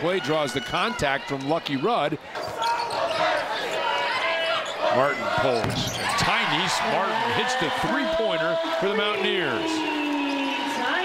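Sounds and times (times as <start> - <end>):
arena crowd noise: 0.0 - 11.0
sneaker squeaks on hardwood: 4.6 - 6.2.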